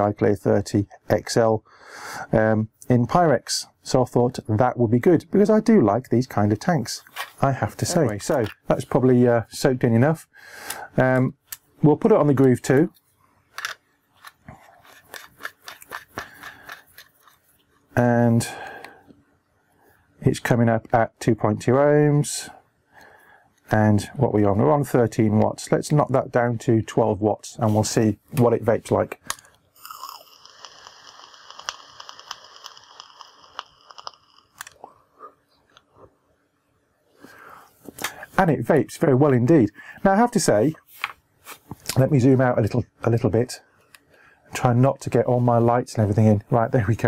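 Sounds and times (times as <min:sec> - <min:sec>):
hand handling noise: 0:12.4 - 0:18.0
small metal clicks and scrapes: 0:13.5 - 0:17.9, 0:30.2 - 0:34.8
e-liquid crackling on coil: 0:14.2 - 0:18.6, 0:27.8 - 0:34.9
electronic cigarette hissing: 0:14.8 - 0:17.4, 0:29.8 - 0:34.9.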